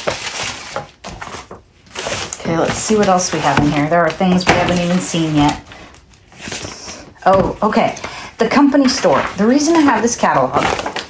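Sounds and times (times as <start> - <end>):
paper rustling and sliding: 0.0 - 11.0.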